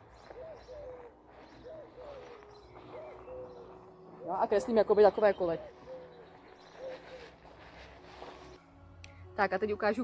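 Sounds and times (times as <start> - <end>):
bird calling faintly: 0.1 - 3.9, 5.1 - 7.4.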